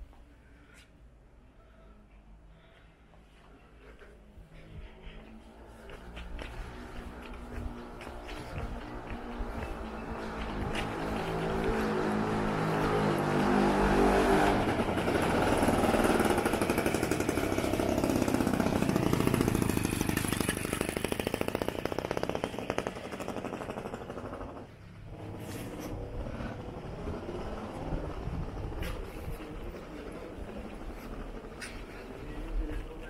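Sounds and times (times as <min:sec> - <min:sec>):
street sound: 0:00.0 - 0:33.0
vehicle engine passing by: 0:05.1 - 0:33.0.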